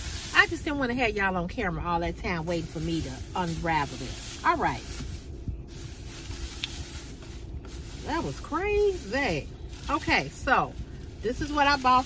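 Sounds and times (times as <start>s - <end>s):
steady hiss: 0.0s - 1.2s
shopping bag rustling: 0.0s - 12.0s.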